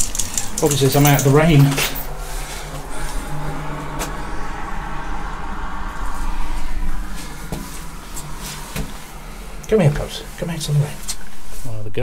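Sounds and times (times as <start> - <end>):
wind noise: 0.0 - 11.6.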